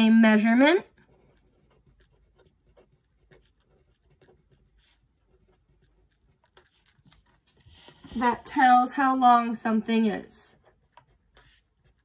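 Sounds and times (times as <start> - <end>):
felt-tip pen scratching on paper: 0.0 - 8.8, 10.5 - 12.0.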